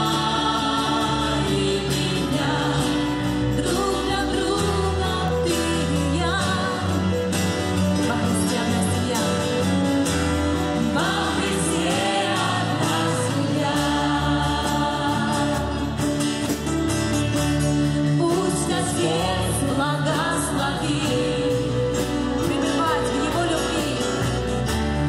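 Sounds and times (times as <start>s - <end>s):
choir and congregation singing: 0.0s - 7.2s, 10.5s - 16.7s, 18.2s - 22.4s
acoustic guitar: 0.0s - 25.0s
keyboard: 0.0s - 25.0s.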